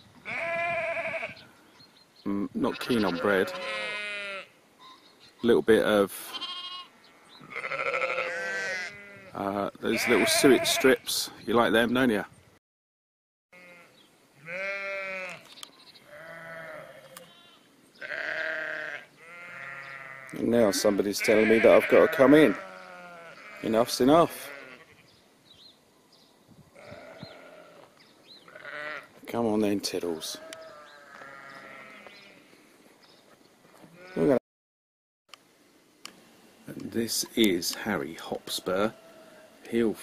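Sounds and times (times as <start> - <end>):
sheep bleating: 0.2 - 1.4, 2.6 - 5.0, 6.2 - 11.0, 13.6 - 15.5, 16.1 - 25.1, 26.8 - 29.2, 30.1 - 32.6, 33.9 - 34.4, 38.7 - 39.7.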